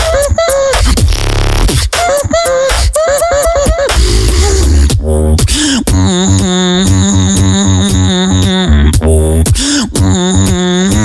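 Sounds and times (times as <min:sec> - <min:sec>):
beatboxed pulsing bass: 0:00.0 - 0:11.0
held vocal note: 0:02.2 - 0:11.0.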